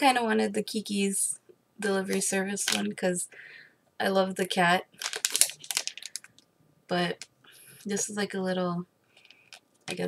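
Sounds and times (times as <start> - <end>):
plastic bag crinkling: 4.9 - 6.4.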